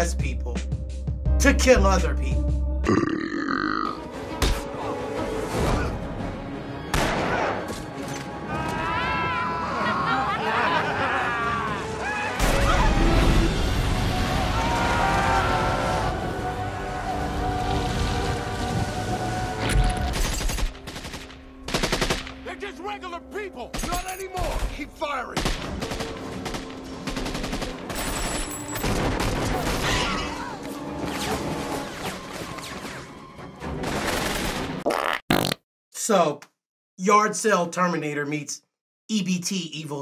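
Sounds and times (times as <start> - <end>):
film soundtrack: 0.0 - 35.0
gunshots: 6.9 - 7.9, 20.0 - 22.4, 23.7 - 30.2.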